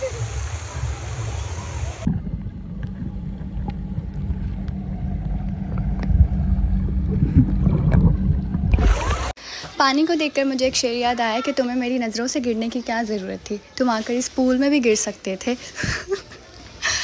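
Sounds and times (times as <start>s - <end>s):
water showering down hissing: 0.0s - 2.1s
muffled underwater rumble: 0.1s - 9.4s.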